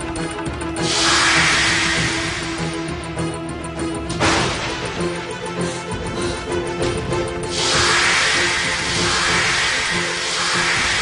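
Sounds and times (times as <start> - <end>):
background music with held note: 0.0 - 11.0
hissing whoosh effect: 7.5 - 11.0.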